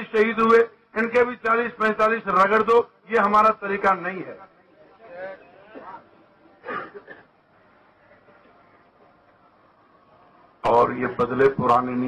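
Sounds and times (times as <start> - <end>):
faint human voices: 4.4 - 10.6
public address announcement: 9.6 - 12.0.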